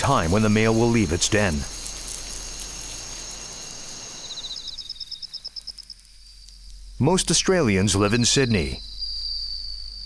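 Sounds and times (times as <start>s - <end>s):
insects trilling: 0.0s - 10.0s
steady hiss: 0.0s - 10.0s.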